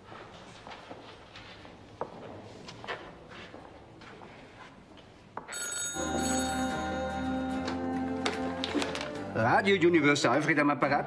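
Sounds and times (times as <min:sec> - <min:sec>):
telephone ringing: 0:05.5 - 0:08.2.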